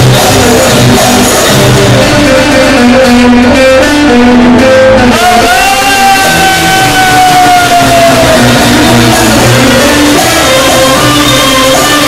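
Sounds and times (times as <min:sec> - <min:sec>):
live band with plucked strings: 0:00.0 - 0:12.0.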